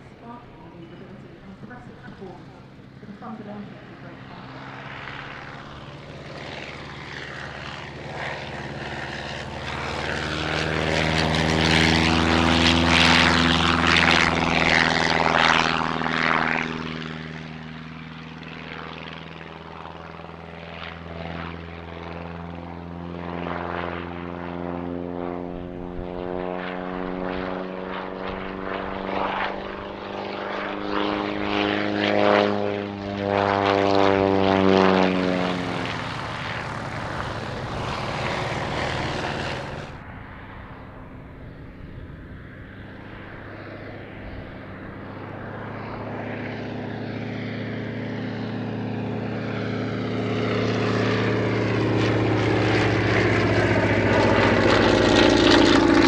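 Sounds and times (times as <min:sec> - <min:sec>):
propeller plane engine passing: 0:00.0 - 0:56.0.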